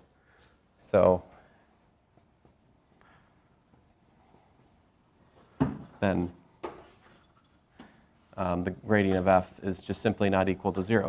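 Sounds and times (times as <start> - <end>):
marker squeaking on whiteboard: 1.8 - 7.7.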